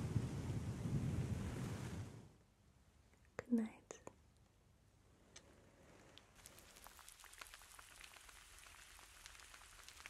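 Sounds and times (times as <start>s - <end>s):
faint dense crackling: 5.4s - 10.0s.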